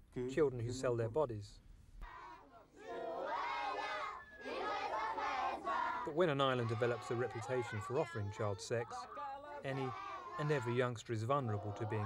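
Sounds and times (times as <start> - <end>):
children shouting in play: 9.8 - 10.7.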